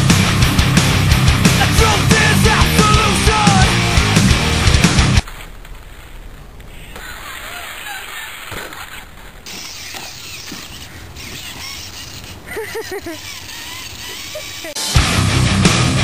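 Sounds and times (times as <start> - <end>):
heavy metal music: 0.0 - 5.2, 14.8 - 16.0
electric toy truck motors whining: 9.5 - 14.8.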